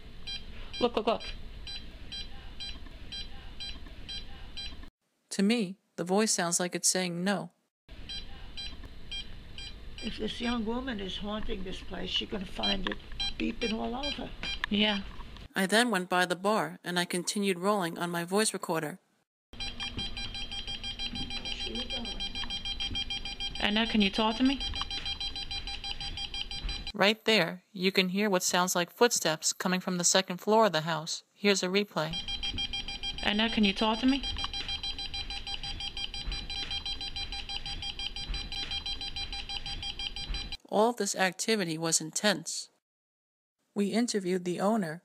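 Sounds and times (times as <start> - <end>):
meter beeping short high beeps: 19.6 - 26.9, 32.1 - 40.6.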